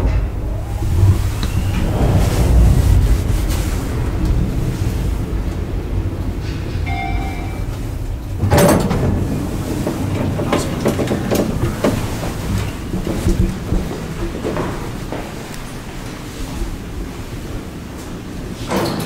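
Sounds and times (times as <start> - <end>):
footsteps: 0.0 - 5.7
elevator car rumbling: 0.0 - 19.0
elevator doors clattering open: 0.0 - 19.0
electronic tone: 6.9 - 7.8.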